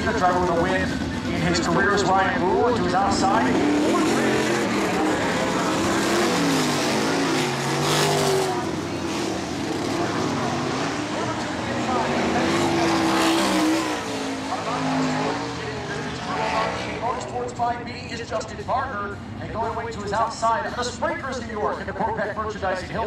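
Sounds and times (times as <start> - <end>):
race car engines circling: 0.0 - 23.0.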